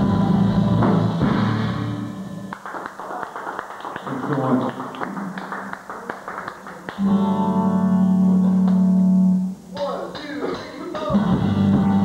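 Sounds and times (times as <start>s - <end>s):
acoustic guitar chord strummed: 7.0s - 12.0s.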